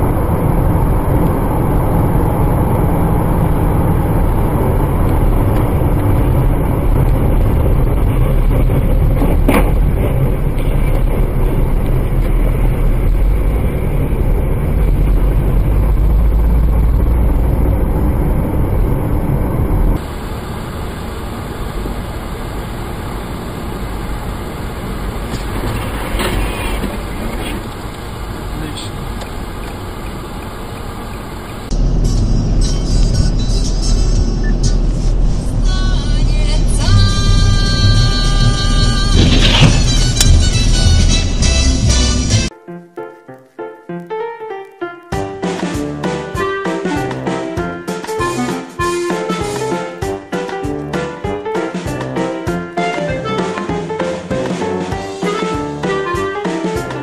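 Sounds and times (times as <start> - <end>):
car engine and road noise: 0.0 - 42.6.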